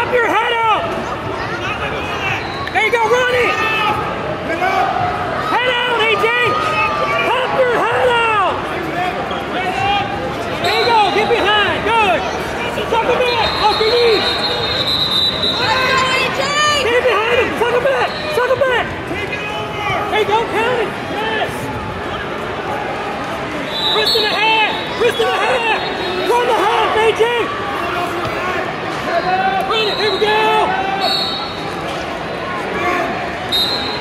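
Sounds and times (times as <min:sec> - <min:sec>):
people shouting in echoing hall: 0:00.0 - 0:31.8.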